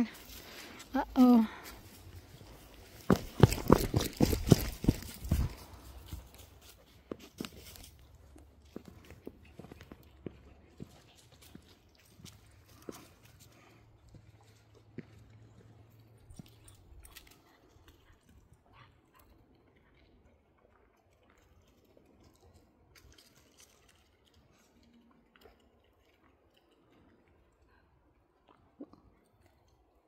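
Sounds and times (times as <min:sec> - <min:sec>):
faint clicks and scuffs: 0:00.1 - 0:19.3.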